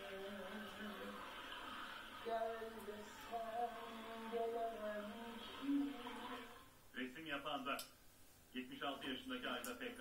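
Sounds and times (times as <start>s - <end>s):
person singing through tv speaker: 0.0s - 6.7s.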